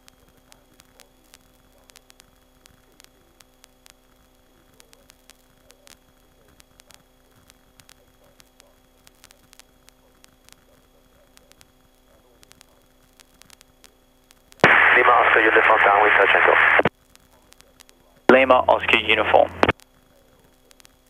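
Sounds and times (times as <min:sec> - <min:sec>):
faint radio hum: 0:00.1 - 0:14.0, 0:14.6 - 0:21.0
radio voice transmission: 0:14.6 - 0:16.9, 0:18.3 - 0:19.7.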